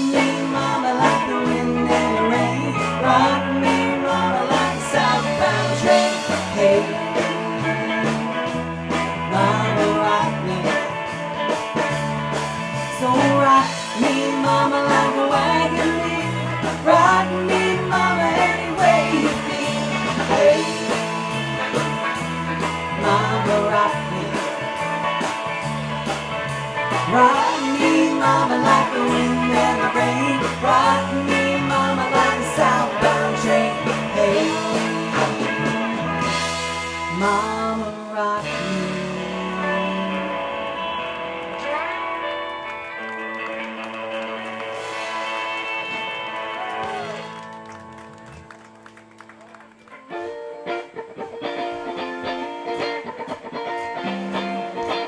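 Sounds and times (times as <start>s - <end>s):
electric bass: 0.0s - 55.0s
electric guitar: 0.0s - 55.0s
drum kit steady beat: 13.7s - 37.2s.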